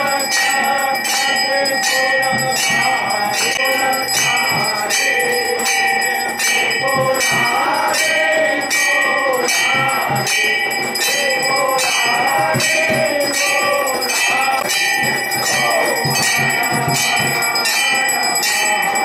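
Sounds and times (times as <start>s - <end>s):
brass bells struck: 0.0s - 19.0s
voices singing: 0.0s - 19.0s.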